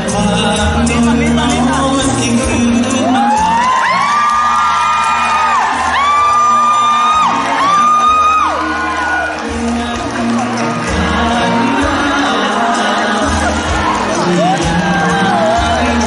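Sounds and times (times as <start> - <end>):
pop music over a pa: 0.0 - 16.0
crowd cheering: 2.9 - 16.0.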